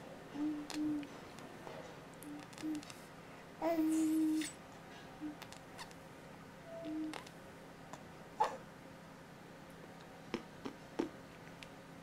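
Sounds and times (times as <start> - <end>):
baby cooing: 3.6 - 4.6, 8.4 - 8.6.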